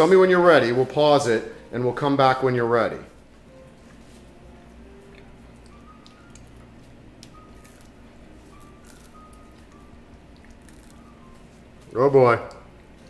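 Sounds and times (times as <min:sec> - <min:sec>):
boy chewing food: 0:03.6 - 0:11.9.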